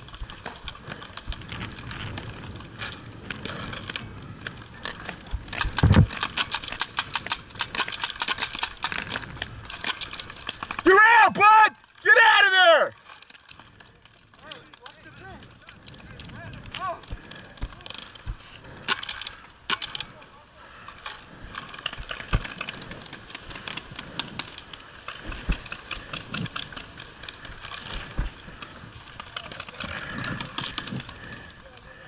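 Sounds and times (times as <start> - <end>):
wind noise: 0.0 - 10.3
distant players shouting: 10.7 - 13.0.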